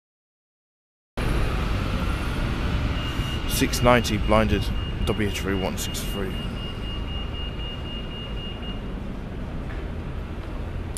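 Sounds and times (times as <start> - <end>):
bus rumbling: 1.2 - 10.9.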